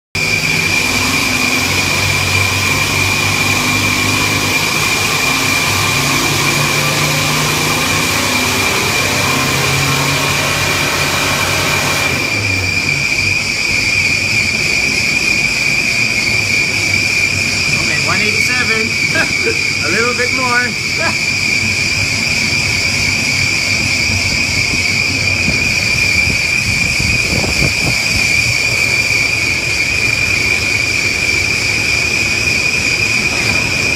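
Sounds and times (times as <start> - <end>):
diesel engine working hard: 0.2 - 33.9
steady high whine: 0.2 - 33.9.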